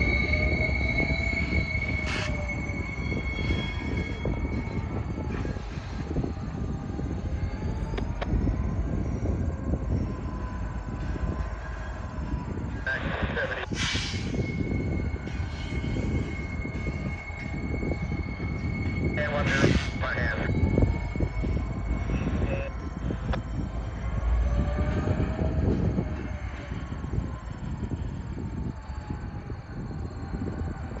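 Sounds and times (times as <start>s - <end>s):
locomotive engines rumbling: 0.0s - 31.0s.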